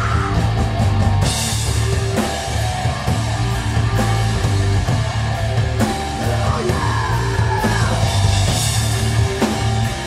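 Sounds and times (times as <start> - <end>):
distorted guitar and bass riff: 0.0 - 10.0
drum kit: 0.0 - 10.0
person yelling vocals: 6.3 - 8.3.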